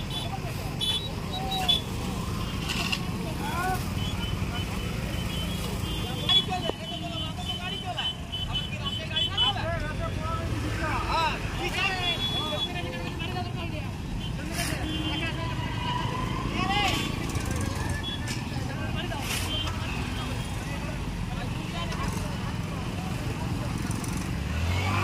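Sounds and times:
vehicle engines rumbling: 0:00.0 - 0:25.0
voices: 0:00.0 - 0:25.0.

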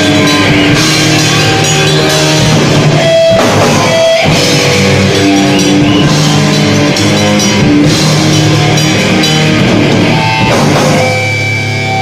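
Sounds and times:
grindcore band playing live: 0:00.0 - 0:12.0.

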